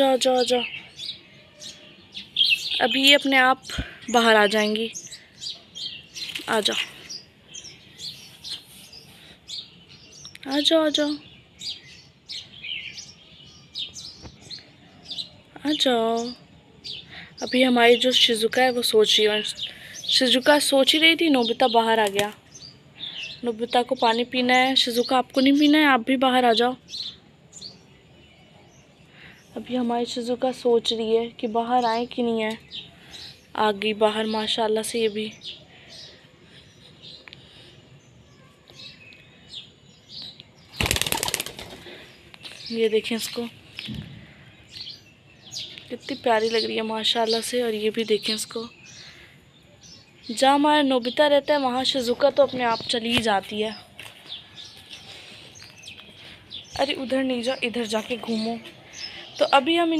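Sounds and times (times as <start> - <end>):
small birds chirping: 0.0 - 59.9
pigeon wings flapping: 40.8 - 41.9.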